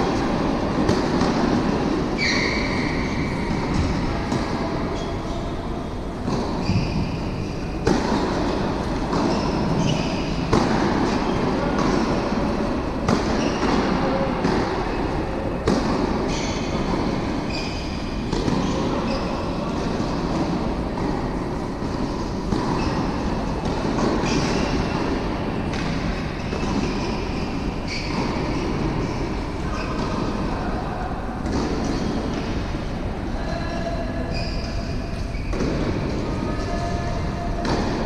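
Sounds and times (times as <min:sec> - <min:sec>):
echoing hall rumble: 0:00.0 - 0:38.0
shoe squeaks: 0:01.7 - 0:11.8, 0:13.2 - 0:14.3, 0:16.3 - 0:20.5, 0:22.0 - 0:25.1, 0:25.7 - 0:30.6, 0:31.6 - 0:32.5, 0:33.4 - 0:37.7.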